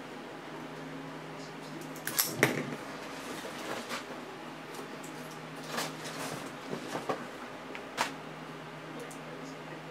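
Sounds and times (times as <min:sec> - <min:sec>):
low room hum: 0:00.0 - 0:09.9.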